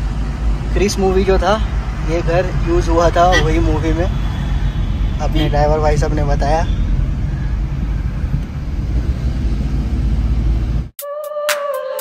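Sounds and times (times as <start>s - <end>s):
car engine and tyre noise: 0.0s - 11.0s.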